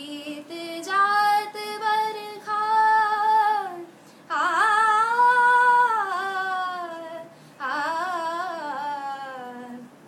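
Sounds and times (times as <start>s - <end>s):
woman singing unaccompanied: 0.0s - 10.0s.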